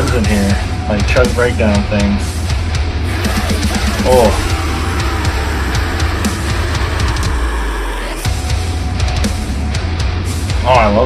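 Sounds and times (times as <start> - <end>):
pounding drums: 0.0 - 10.6
distorted guitar chugs: 0.0 - 11.0.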